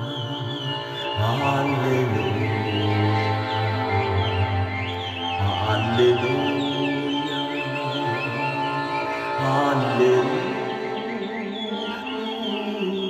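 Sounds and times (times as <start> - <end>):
birds chirping: 0.0 - 13.0
accordion playing chords: 2.6 - 9.4.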